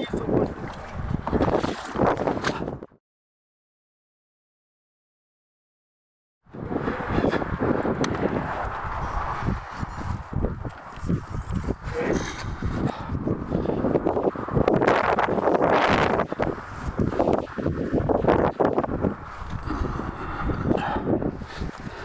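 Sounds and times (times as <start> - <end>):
wind rumbling on microphone: 0.0 - 3.0, 6.4 - 22.0
microphone handling noise: 0.4 - 2.9.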